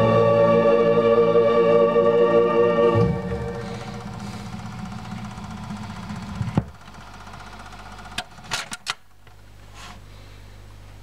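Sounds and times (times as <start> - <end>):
stylus rumbling in run-out groove: 2.8 - 7.6
record player low hum: 3.0 - 8.4.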